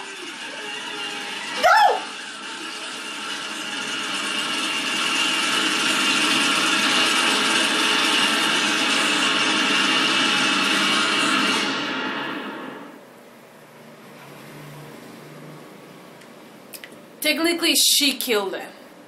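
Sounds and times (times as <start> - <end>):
noisy drone through speakers: 0.0 - 17.2.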